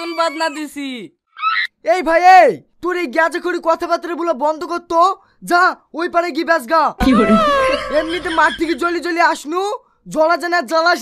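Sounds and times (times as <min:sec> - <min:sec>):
young man talking: 0:00.0 - 0:01.2, 0:01.8 - 0:11.0.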